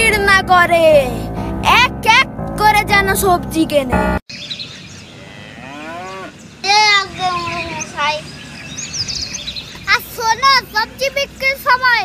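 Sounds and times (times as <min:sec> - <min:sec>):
cattle mooing: 0:05.1 - 0:06.4.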